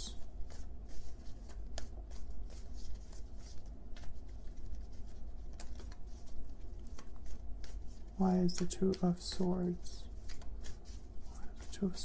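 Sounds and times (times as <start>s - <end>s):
cards shuffled by hand: 0.0s - 12.0s
low steady hum: 0.0s - 12.0s.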